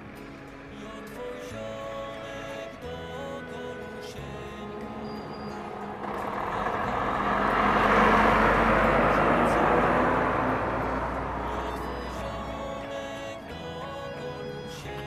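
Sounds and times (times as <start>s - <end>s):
soft music: 0.0s - 15.0s
lorry driving past: 3.7s - 13.5s.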